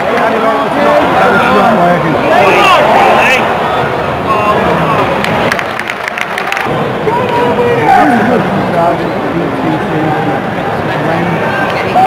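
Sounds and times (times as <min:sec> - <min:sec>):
murmur of crowd voices: 0:00.0 - 0:12.0
people clapping: 0:05.0 - 0:07.6.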